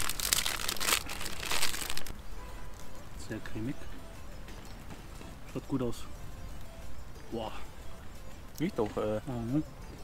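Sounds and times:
plastic wrapper crinkling: 0:00.0 - 0:02.2.

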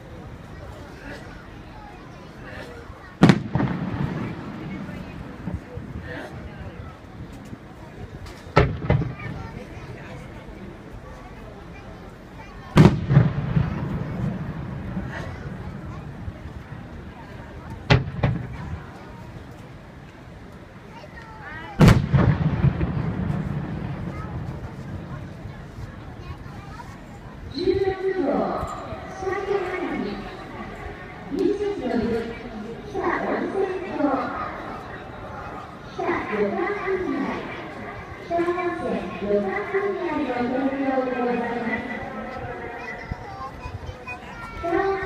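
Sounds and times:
firework bang with echo: 0:03.2 - 0:05.6, 0:08.6 - 0:09.4, 0:12.8 - 0:15.0, 0:17.8 - 0:19.0, 0:21.8 - 0:25.1.

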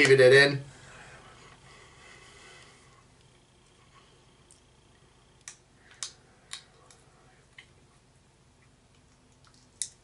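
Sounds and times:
faint chewing: 0:08.6 - 0:10.0.

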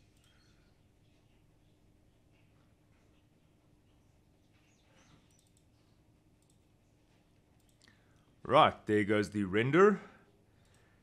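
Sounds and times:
computer mouse clicks: 0:00.0 - 0:00.6, 0:04.5 - 0:08.0, 0:10.6 - 0:10.9.

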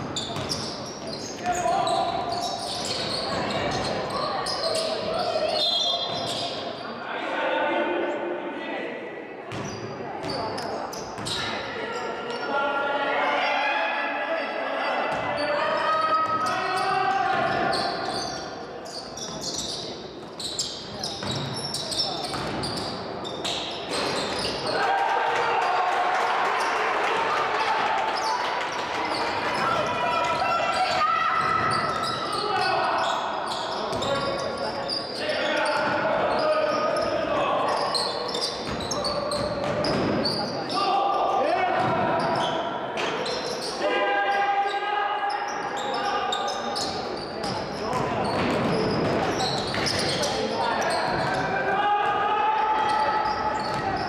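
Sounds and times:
basketball bouncing on wooden court: 0:00.0 - 0:00.7, 0:09.5 - 0:10.4, 0:21.0 - 0:21.6, 0:22.2 - 0:22.8, 0:38.6 - 0:40.4, 0:47.4 - 0:50.2
people shouting in a gym: 0:01.0 - 0:08.9, 0:24.2 - 0:47.0, 0:47.8 - 0:54.0.

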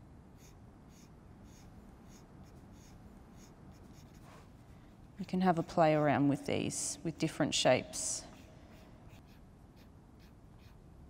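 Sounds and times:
pencil lead scratching on paper: 0:00.4 - 0:04.6, 0:08.3 - 0:10.8.

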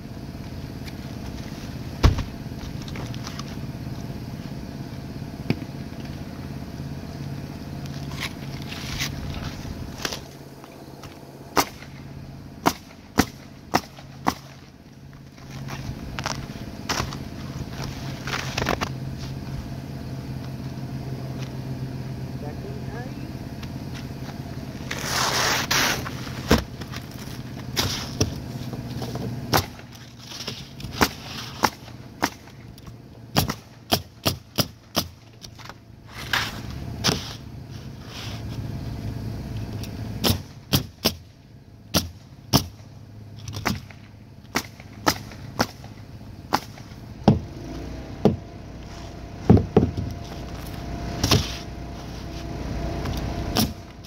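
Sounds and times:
steady low hum: 0:00.0 - 0:54.0
pneumatic nailer shots: 0:11.5 - 0:12.0, 0:12.6 - 0:14.6, 0:24.9 - 0:26.7, 0:29.5 - 0:32.6, 0:33.3 - 0:35.6, 0:36.2 - 0:37.4, 0:40.2 - 0:41.3, 0:41.9 - 0:47.5, 0:51.2 - 0:51.7, 0:53.5 - 0:54.0.

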